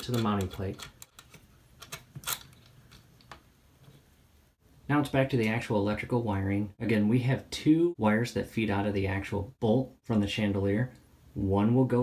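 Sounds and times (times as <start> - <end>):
metal nut clicking on threaded bolt: 0.0 - 3.4.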